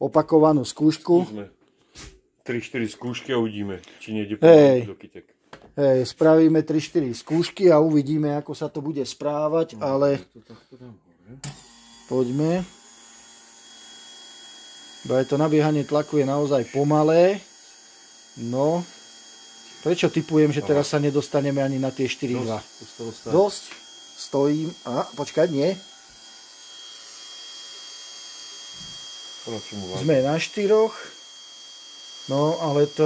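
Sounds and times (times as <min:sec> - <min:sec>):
fuel pump whine: 0:11.4 - 0:33.0.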